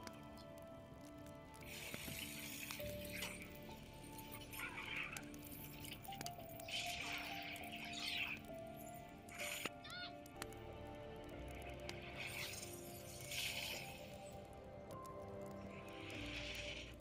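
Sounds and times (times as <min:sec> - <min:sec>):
quiet sustained music: 0:00.0 - 0:17.0
soft hissing swells: 0:11.6 - 0:14.6, 0:15.3 - 0:17.0.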